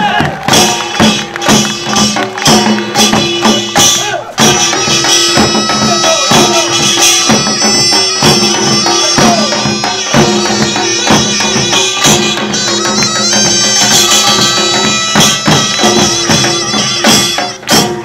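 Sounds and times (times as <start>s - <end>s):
drums beating steady rhythm: 0.0s - 18.0s
wind instrument holding notes: 0.0s - 18.0s.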